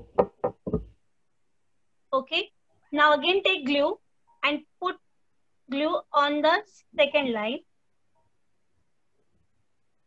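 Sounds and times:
knocks on a tabletop: 0.0s - 1.0s.

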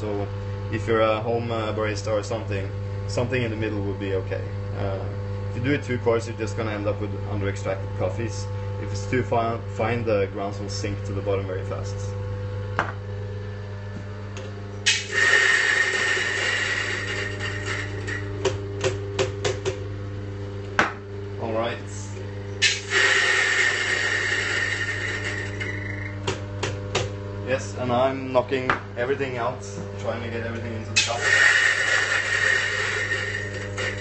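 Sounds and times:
coffee grinder motor hum: 6.6s - 21.4s, 22.1s - 28.0s, 29.8s - 34.0s
beans grinding rush: 14.9s - 18.3s, 22.6s - 26.1s, 31.0s - 34.0s.

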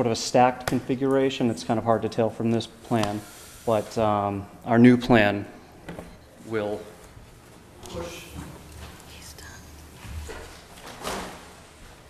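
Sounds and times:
soft murmured voice: 7.8s - 9.8s
poster board rustling and bumping: 10.0s - 12.0s.

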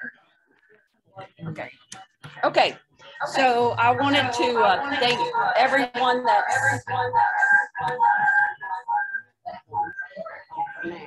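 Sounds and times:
broken echoing voice: 2.6s - 11.0s.

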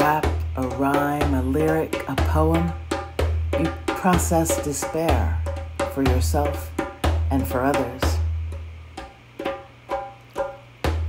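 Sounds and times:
deep drum beat with low boom: 0.0s - 9.7s, 10.8s - 11.0s.

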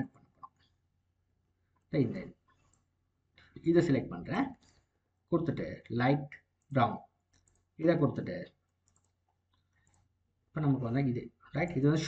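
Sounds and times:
person speaking: 1.9s - 2.4s, 3.4s - 8.6s, 10.5s - 12.0s
computer mouse clicks: 2.5s - 3.5s, 6.6s - 7.8s, 8.6s - 10.2s.

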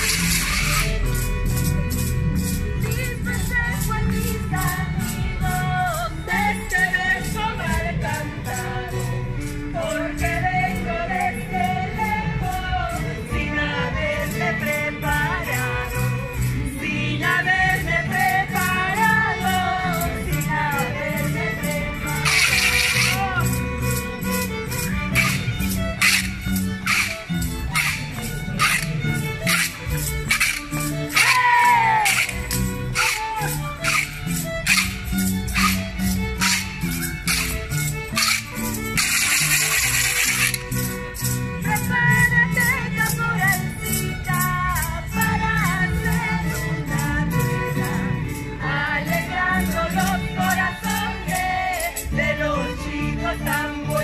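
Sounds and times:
sharp percussive strokes: 0.0s - 2.6s, 22.2s - 41.4s
harp and violin folk dance music: 0.0s - 54.0s.

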